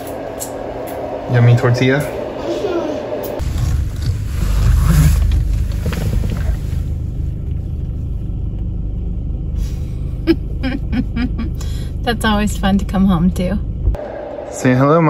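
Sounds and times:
low steady rumble: 0.3 - 15.0.

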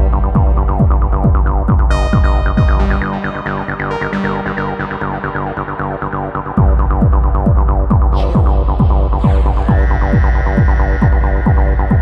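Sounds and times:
kick drum: 0.0 - 3.1, 6.6 - 12.0
low bass: 0.0 - 12.0
rippling synth notes: 0.0 - 12.0
held synth tone: 1.9 - 6.5.

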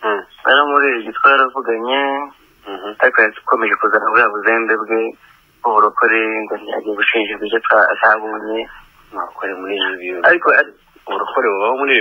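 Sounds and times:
person talking over phone line: 0.0 - 12.0.

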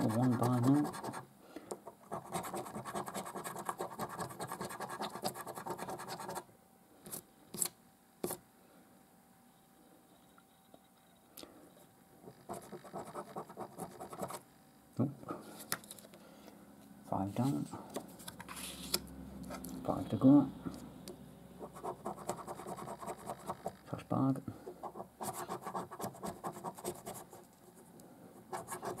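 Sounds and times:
coin scratching scratchcard: 0.0 - 1.2, 2.1 - 6.4, 21.6 - 23.8, 24.9 - 27.4, 28.5 - 29.0.

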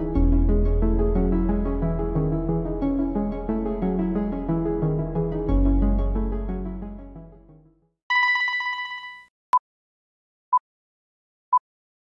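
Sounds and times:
background music: 0.0 - 7.7
trilling electric bell tone: 8.1 - 9.2.

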